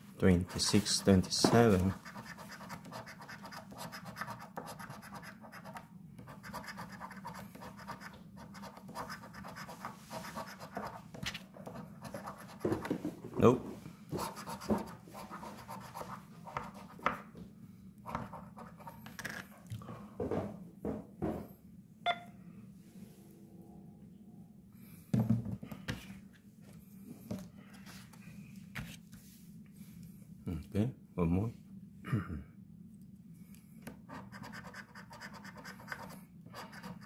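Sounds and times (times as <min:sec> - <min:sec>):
coin scratching lottery ticket: 0:00.5 - 0:11.0, 0:34.1 - 0:37.0.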